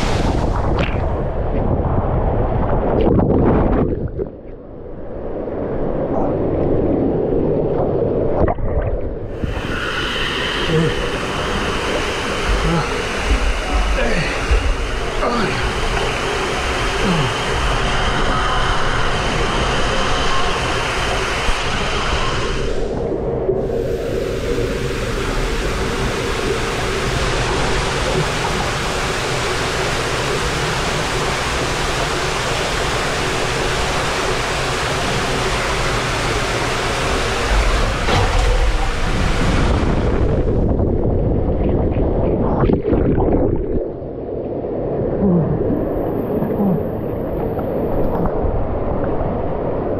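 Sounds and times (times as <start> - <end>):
low rumbling: 0.0 - 49.9
water rushing down a slide: 8.2 - 43.9.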